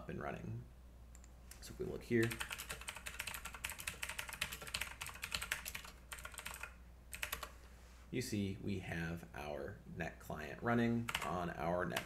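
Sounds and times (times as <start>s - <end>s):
fast typing on keyboard: 2.2s - 7.5s, 11.1s - 12.0s.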